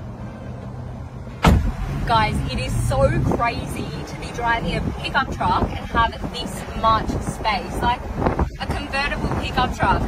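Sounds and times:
engine rumbling: 0:00.0 - 0:10.0
loud thump: 0:01.4 - 0:01.9.

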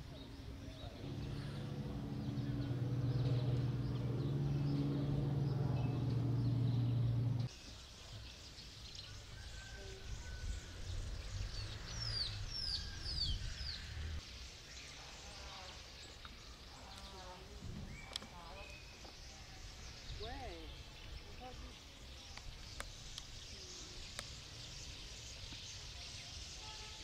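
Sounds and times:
bird chirping: 0:00.0 - 0:27.0
low mechanical hum: 0:00.2 - 0:07.5.

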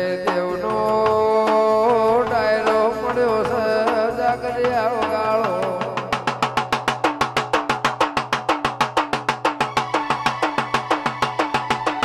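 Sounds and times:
fast barrel drum strokes: 0:00.0 - 0:12.0.

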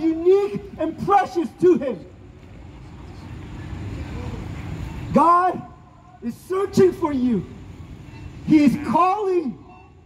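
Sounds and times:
road traffic rumble: 0:00.0 - 0:10.0.

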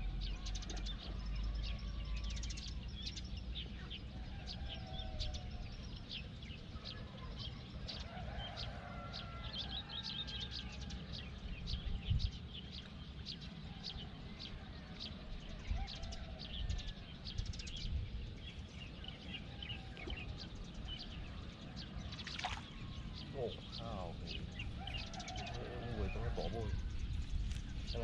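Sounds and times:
small birds chirping: 0:00.0 - 0:28.0
steady low rumble: 0:10.9 - 0:25.3, 0:26.0 - 0:28.0.

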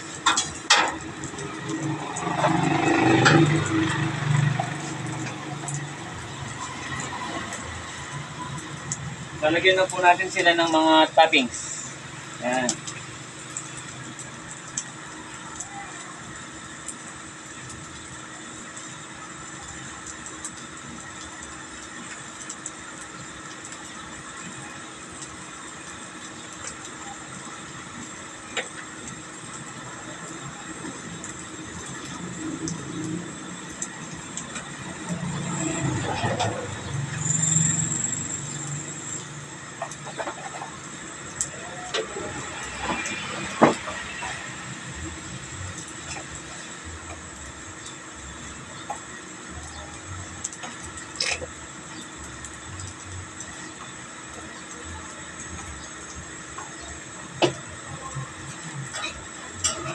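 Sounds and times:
utensils clicking on a griddle: 0:00.1 - 0:06.0, 0:49.7 - 0:53.9, 0:58.5 - 0:59.9.

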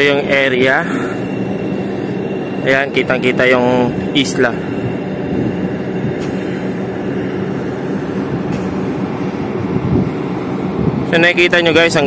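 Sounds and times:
ship machinery hum: 0:00.0 - 0:12.0
wind buffeting microphone: 0:00.0 - 0:12.0.

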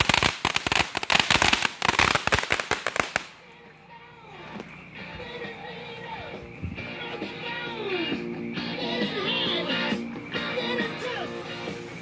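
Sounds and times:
firework fountain crackling: 0:00.0 - 0:03.5.

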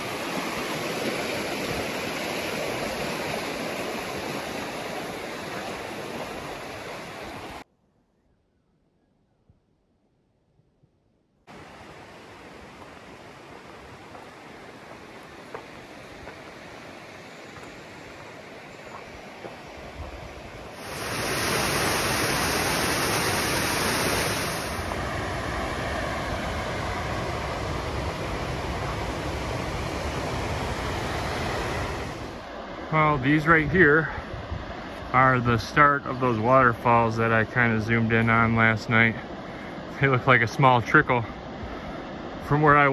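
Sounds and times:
waterfall rushing: 0:00.0 - 0:07.6, 0:20.6 - 0:34.0.

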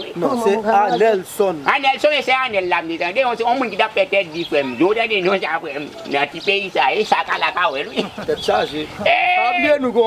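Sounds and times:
men's voices: 0:00.0 - 0:10.0
quavering bleat-like call: 0:09.0 - 0:09.8.

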